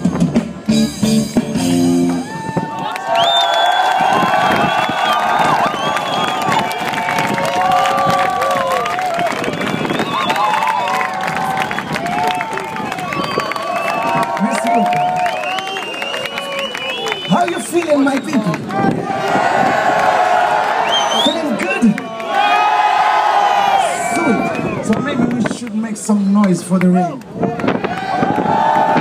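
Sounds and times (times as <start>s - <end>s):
live band playing: 0.0s - 2.8s
crowd cheering and clapping: 2.0s - 29.0s.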